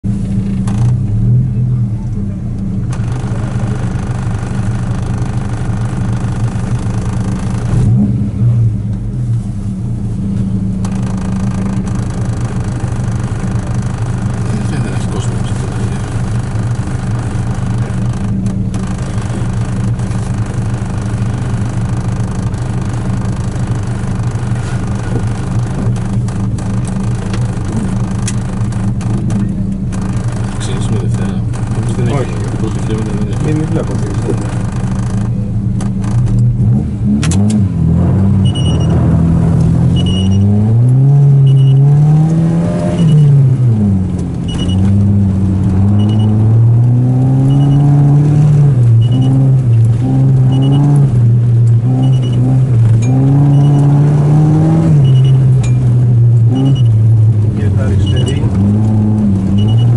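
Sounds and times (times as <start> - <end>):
car engine running inside cabin: 0.0 - 59.9
throttle blips: 38.4 - 39.0, 39.6 - 42.0, 42.8 - 43.5, 44.5 - 44.9, 45.8 - 51.1, 51.8 - 54.2, 54.8 - 57.2, 57.8 - 59.9.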